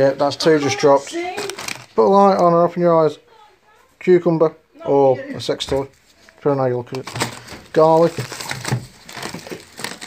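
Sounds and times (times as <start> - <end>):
plastic packaging crinkling: 0.6 - 2.4, 5.8 - 10.0
mesh bag of garlic handled: 6.9 - 10.0.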